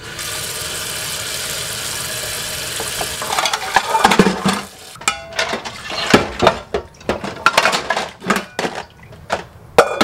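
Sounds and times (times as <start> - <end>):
faucet water running into sink: 0.0 - 5.0
plates and pans clinking: 2.8 - 10.0.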